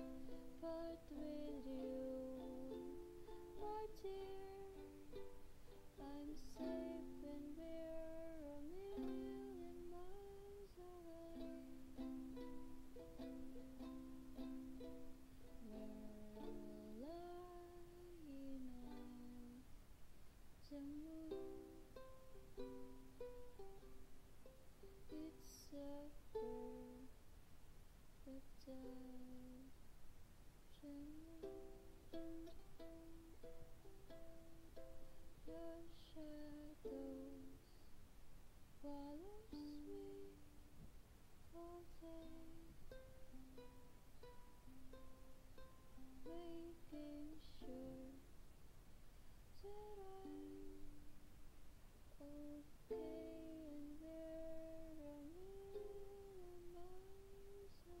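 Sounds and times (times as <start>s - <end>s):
woman humming softly: 0.0s - 12.6s, 15.4s - 19.7s, 20.6s - 23.0s, 25.1s - 27.1s, 28.2s - 29.8s, 30.7s - 33.5s, 35.4s - 37.9s, 38.8s - 40.6s, 41.5s - 44.5s, 46.0s - 48.3s, 49.5s - 51.1s, 52.2s - 58.0s.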